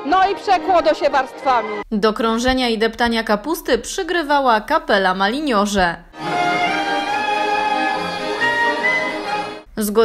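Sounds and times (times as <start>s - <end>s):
bagpipe: 6.2s - 9.6s
fiddles: 6.2s - 9.6s
accordion: 6.2s - 9.7s.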